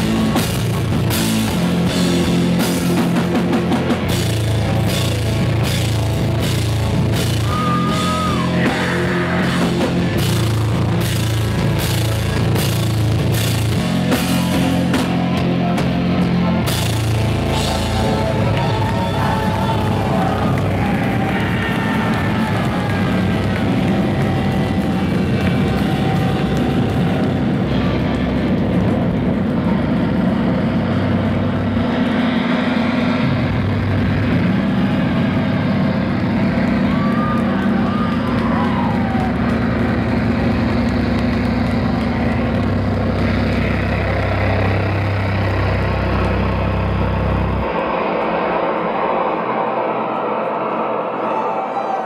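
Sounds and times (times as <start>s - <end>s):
live rock band playing: 0.0s - 29.5s
crowd noise: 0.0s - 52.0s.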